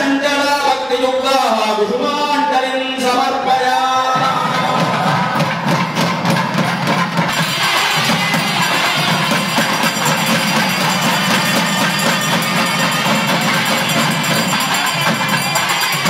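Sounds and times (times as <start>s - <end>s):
temple drums: 4.1s - 16.0s
ringing bells and cymbals: 4.6s - 16.0s.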